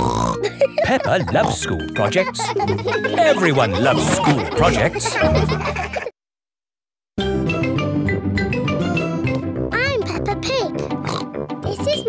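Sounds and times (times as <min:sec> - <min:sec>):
light theme music: 0:00.4 - 0:06.0, 0:07.2 - 0:12.0
girl speaking: 0:09.7 - 0:10.9, 0:11.6 - 0:12.0
pig snort: 0:11.0 - 0:11.3.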